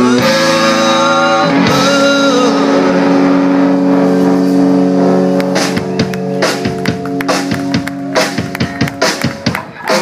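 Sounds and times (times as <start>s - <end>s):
sustained electric guitar chord: 0.0s - 8.1s.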